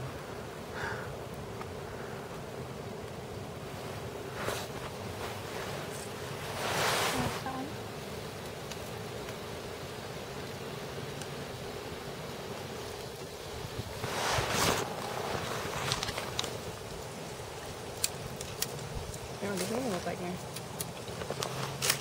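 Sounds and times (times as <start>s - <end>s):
wind rushing through trees: 3.4s - 8.5s, 9.1s - 20.4s.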